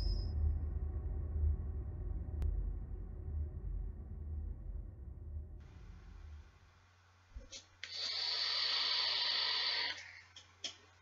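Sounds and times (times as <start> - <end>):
airy hiss of vaping drag: 7.8 - 10.0.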